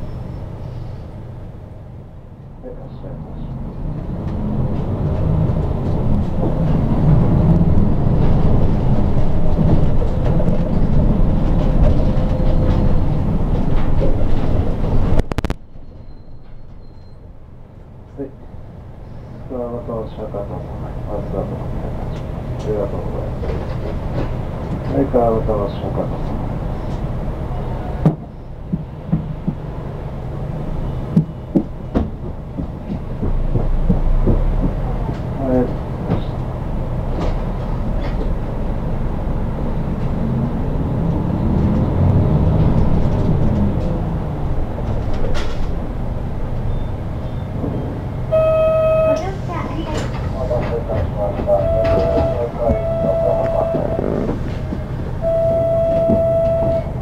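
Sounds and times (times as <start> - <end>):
diesel bus engine idling: 0.0 - 57.0
short steady tone: 48.3 - 49.2, 51.6 - 54.0, 55.2 - 57.0
faint voices: 49.2 - 54.8.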